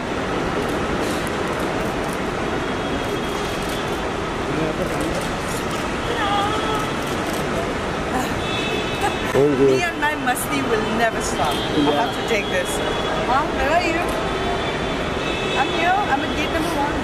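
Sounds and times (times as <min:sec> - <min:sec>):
traffic hum: 0:00.0 - 0:17.0.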